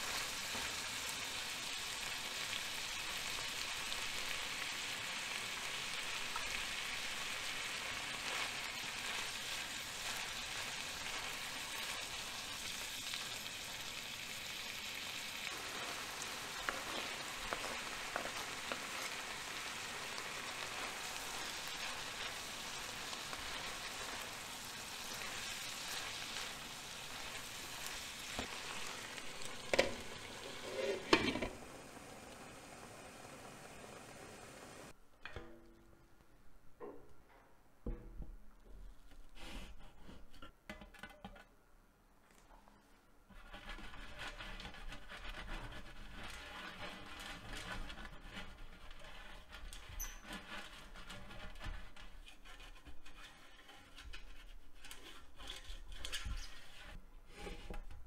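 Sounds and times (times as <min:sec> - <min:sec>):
food sizzling in a frying pan: 0:00.0 - 0:34.9.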